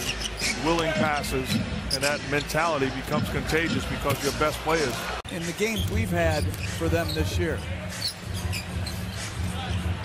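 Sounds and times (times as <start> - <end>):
sneaker squeaks: 0.0 - 2.7, 5.3 - 10.0
arena crowd noise: 0.0 - 10.0.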